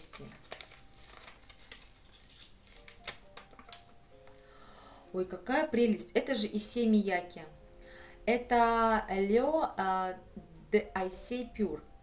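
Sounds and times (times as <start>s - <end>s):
paper crackling: 0.0s - 4.4s.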